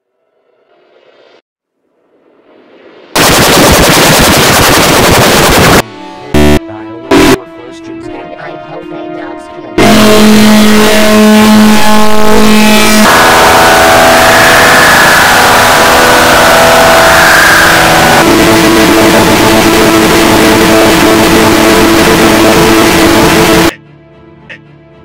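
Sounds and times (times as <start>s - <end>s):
distorted droning tones: 2.0s - 7.4s, 9.8s - 23.8s
dense wash of noise: 2.4s - 7.4s, 12.1s - 23.8s.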